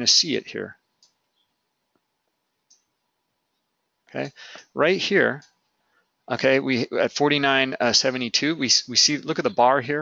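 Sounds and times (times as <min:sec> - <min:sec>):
computer mouse clicks: 0:02.6 - 0:03.0.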